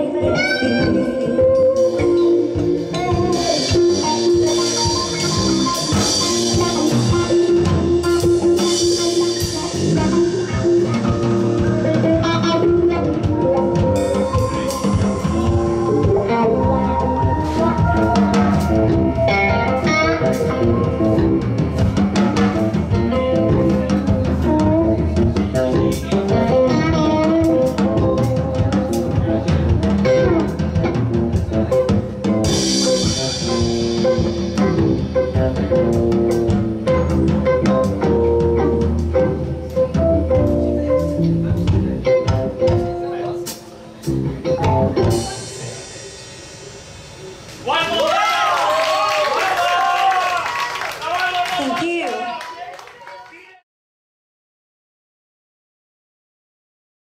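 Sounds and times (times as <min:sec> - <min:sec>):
live band playing: 0:00.0 - 0:53.2
cymbals ringing: 0:13.9 - 0:21.0.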